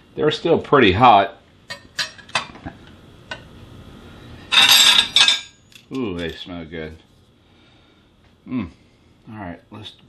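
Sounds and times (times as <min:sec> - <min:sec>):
utensil clinking on plate: 0:04.5 - 0:06.4.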